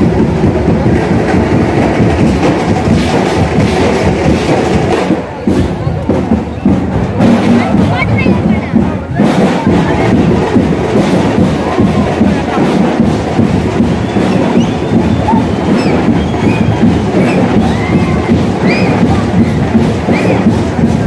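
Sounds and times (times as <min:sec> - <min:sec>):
percussion-heavy procession music: 0:00.0 - 0:21.0
crowd shouting and whistling: 0:13.2 - 0:20.8.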